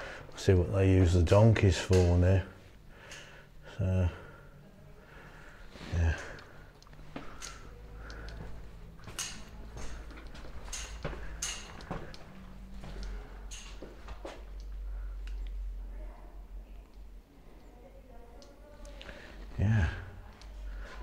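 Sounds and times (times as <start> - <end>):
footsteps on tiled floor: 7.0 - 14.7.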